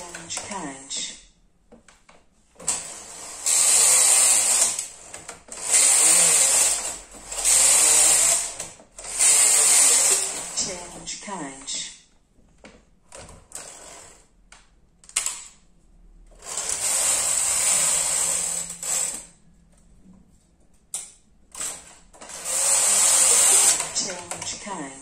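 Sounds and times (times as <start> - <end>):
knitting machine carriage sliding: 2.5 - 11.1, 13.1 - 14.3, 16.3 - 19.4, 21.5 - 24.7.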